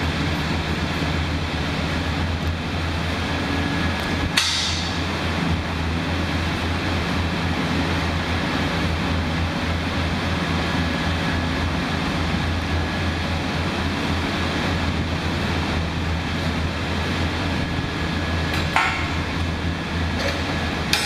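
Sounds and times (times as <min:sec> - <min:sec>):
foundry machinery rumble and hiss: 0:00.0 - 0:21.0.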